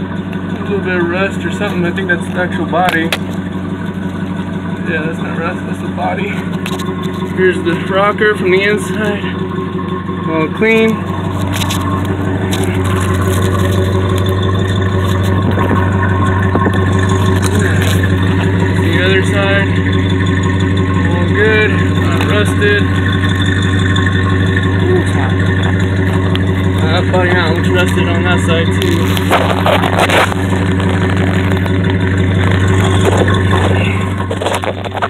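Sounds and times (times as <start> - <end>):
car engine idling: 0.0 - 35.0.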